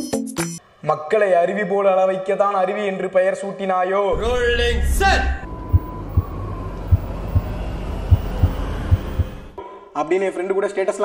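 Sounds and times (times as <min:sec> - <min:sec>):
low drone: 0:04.2 - 0:09.6
heartbeat thuds: 0:05.5 - 0:09.6.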